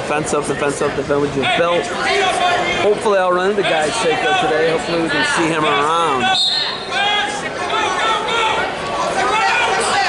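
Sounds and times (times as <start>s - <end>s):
people calling out: 3.6s - 10.0s.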